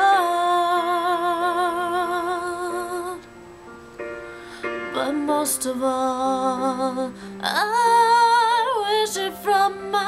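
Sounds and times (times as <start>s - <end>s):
soft backing music: 0.0s - 10.0s.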